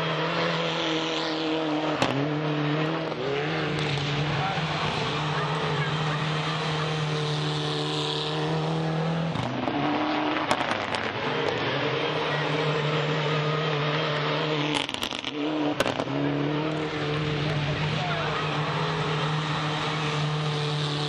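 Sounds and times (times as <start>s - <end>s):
car engine revving hard: 0.0s - 21.0s.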